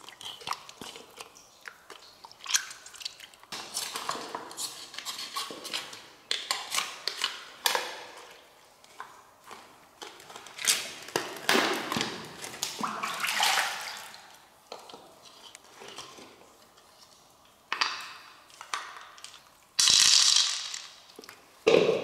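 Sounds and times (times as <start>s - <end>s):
shells knocking and clattering: 19.8s - 21.0s.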